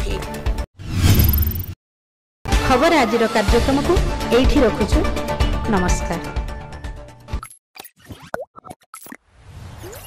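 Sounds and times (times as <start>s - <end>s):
whoosh: 0.8s - 1.8s.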